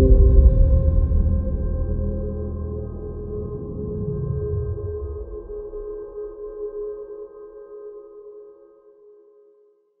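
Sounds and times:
held music chord: 0.0 - 2.0.

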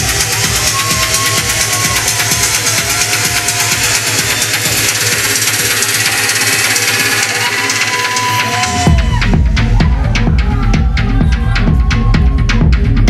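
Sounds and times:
heavy kick and bass: 0.0 - 13.0
techno music: 0.0 - 13.0.

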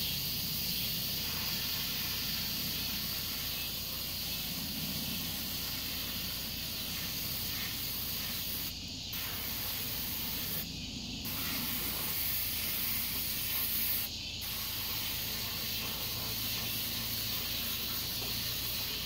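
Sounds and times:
water spraying from a hose: 0.0 - 19.0.

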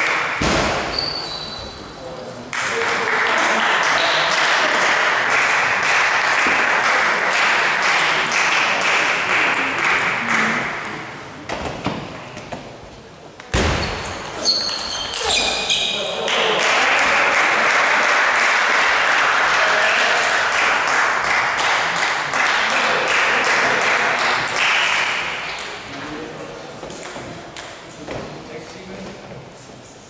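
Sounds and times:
shoe squeaks: 0.9 - 2.0, 13.8 - 16.1
din of many voices: 1.6 - 13.6, 15.1 - 30.0.

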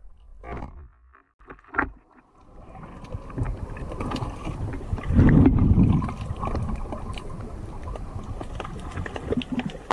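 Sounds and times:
underwater water rushing: 1.8 - 9.9.

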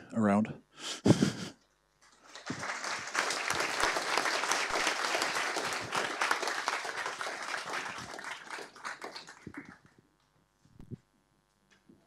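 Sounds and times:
audience applauding: 2.2 - 10.0.

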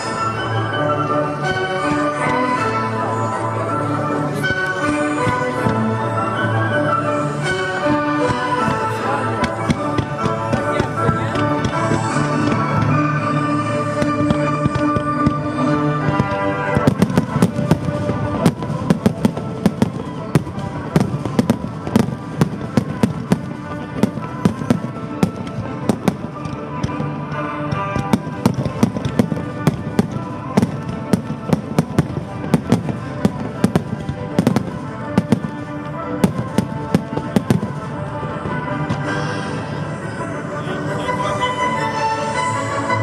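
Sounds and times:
music playing: 0.0 - 43.0
fireworks bursting: 4.3 - 40.2.

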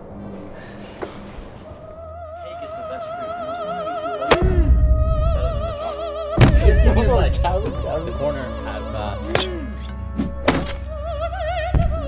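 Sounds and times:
music: 1.6 - 12.0
operatic soprano singing: 1.6 - 12.0
heavy low thump: 4.3 - 5.7, 6.3 - 7.8, 11.7 - 12.0.

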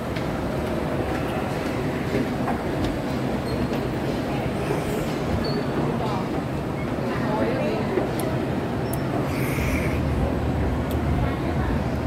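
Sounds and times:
ventilation hum: 6.1 - 12.0.

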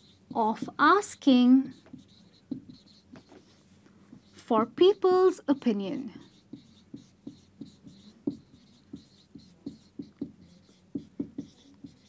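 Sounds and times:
marker squeaking on whiteboard: 0.0 - 4.5, 6.1 - 12.0.

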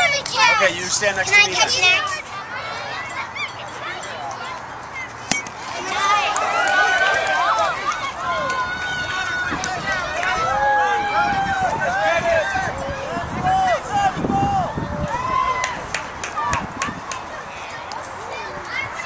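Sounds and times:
spectators shouting and cheering: 0.0 - 19.0
bat hitting baseball: 5.2 - 5.6.

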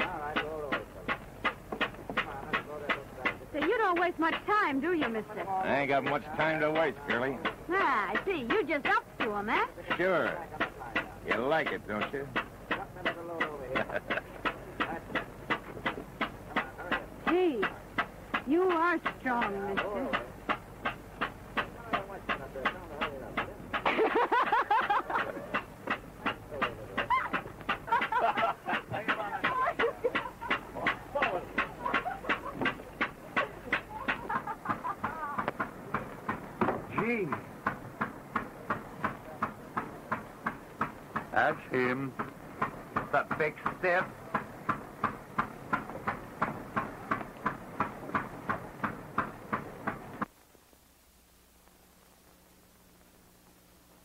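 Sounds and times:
rhythmic clicking: 0.0 - 50.3.

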